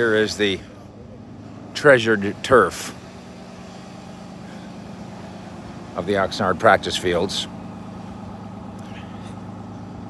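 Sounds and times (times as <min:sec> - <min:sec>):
motor humming: 0:00.0 - 0:10.0
outdoor background noise: 0:00.0 - 0:10.0.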